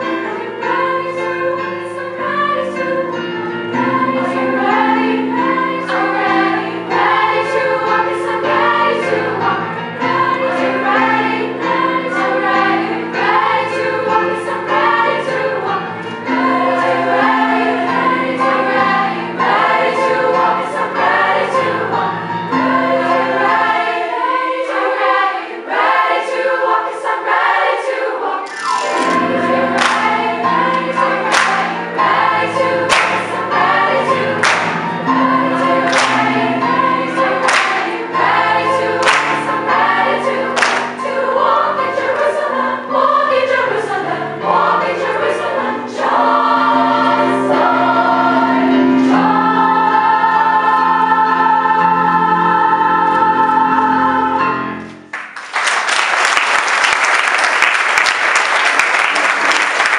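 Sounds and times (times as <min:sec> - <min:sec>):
youth choir singing in parts: 0:00.0 - 0:54.9
piano accompaniment: 0:00.0 - 0:59.9
sharp rhythmic hand claps: 0:29.0 - 0:31.8, 0:32.9 - 0:33.4, 0:34.3 - 0:34.9, 0:35.9 - 0:36.5, 0:37.4 - 0:38.0, 0:39.0 - 0:39.6, 0:40.5 - 0:41.0, 0:55.1 - 0:59.9.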